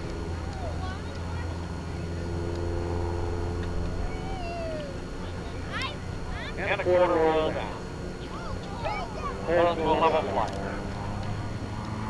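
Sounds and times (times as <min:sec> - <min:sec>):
distant propeller plane droning: 0:00.0 - 0:12.0
wavering pitch glides: 0:04.0 - 0:05.1.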